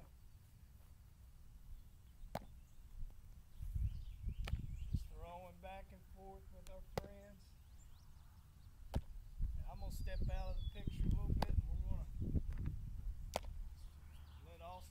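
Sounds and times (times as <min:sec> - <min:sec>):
baseball smacking into leather gloves: 0:02.3 - 0:03.2, 0:04.4 - 0:04.7, 0:06.6 - 0:07.3, 0:08.8 - 0:09.2, 0:11.0 - 0:11.8, 0:12.5 - 0:13.6
wind rumble on microphone: 0:03.0 - 0:05.2, 0:09.0 - 0:13.9.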